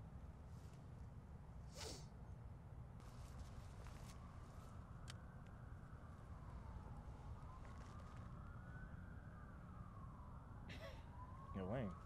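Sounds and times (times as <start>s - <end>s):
brief hiss: 1.7s - 2.0s
faint siren wailing: 3.8s - 12.0s.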